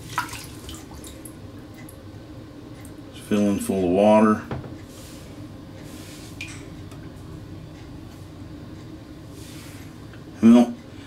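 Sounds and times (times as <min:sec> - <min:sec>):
small water splash: 0:00.0 - 0:01.2
water trickling and dripping: 0:00.0 - 0:02.0.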